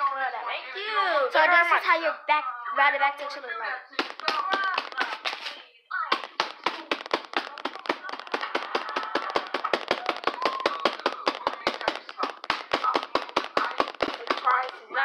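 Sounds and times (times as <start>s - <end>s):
person speaking: 4.0s - 15.0s.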